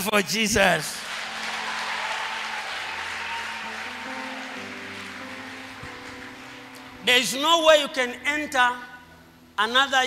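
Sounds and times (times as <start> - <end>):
congregation clapping: 0.8 - 7.6.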